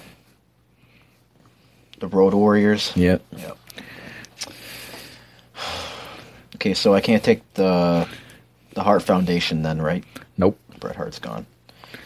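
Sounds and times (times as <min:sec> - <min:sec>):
person breathing: 0:03.7 - 0:06.5, 0:07.9 - 0:08.8, 0:11.7 - 0:12.0.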